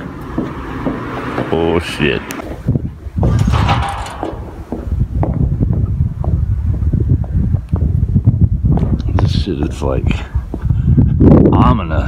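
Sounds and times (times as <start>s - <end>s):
footsteps on pavement: 0.0s - 11.2s
wind buffeting microphone: 0.0s - 12.0s.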